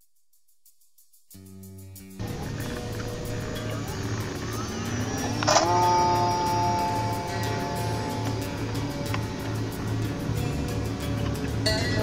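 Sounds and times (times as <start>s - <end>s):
background music with steady beat: 0.0s - 12.0s
model plane motor whine: 2.2s - 11.6s.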